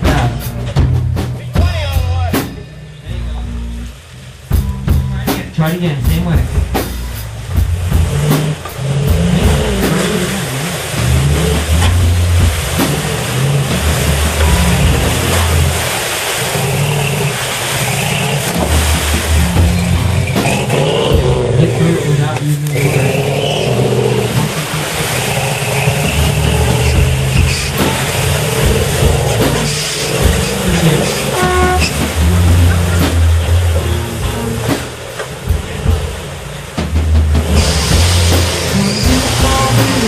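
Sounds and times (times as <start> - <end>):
truck engine revving: 0.0 - 40.0.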